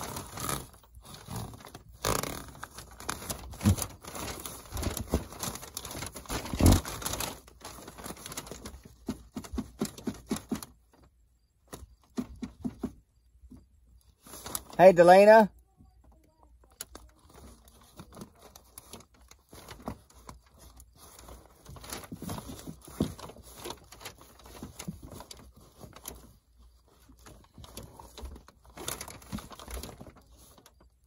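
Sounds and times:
plastic wrap rustling and crinkling: 0.0 - 12.9, 13.9 - 15.4, 16.0 - 31.0.

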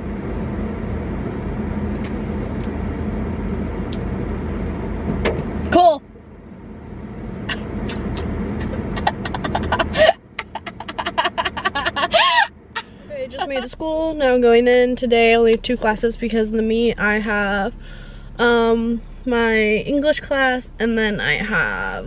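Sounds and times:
car blower fan running: 0.0 - 22.0
laughter: 8.6 - 13.7.

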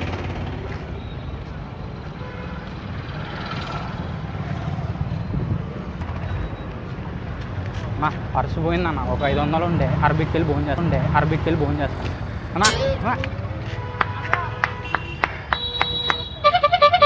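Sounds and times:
motorcycle and car engines passing: 0.0 - 14.4.

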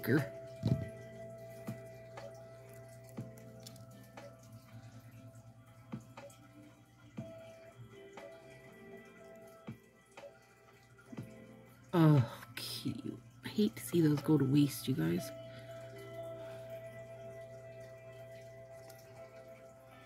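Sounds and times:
quiet background music: 0.0 - 20.0.

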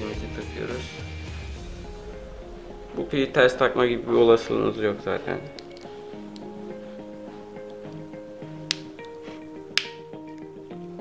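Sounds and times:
background music: 0.0 - 11.0
battery snap clip clicks: 5.5 - 6.5, 8.7 - 10.5.

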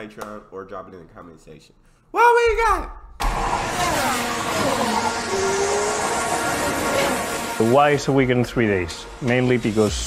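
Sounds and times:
race car engine passing: 3.2 - 9.7
rising tone: 3.2 - 10.0.

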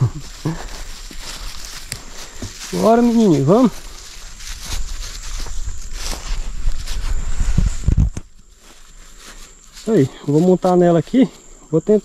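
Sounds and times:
footsteps through grass: 0.0 - 12.0
high insect drone: 0.0 - 12.0.

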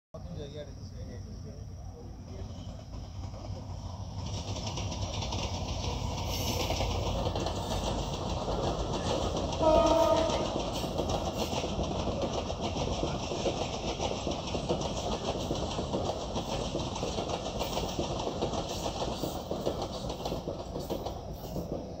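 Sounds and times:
train wheels rumbling on rails: 0.2 - 22.0
train horn blast: 9.6 - 10.6.

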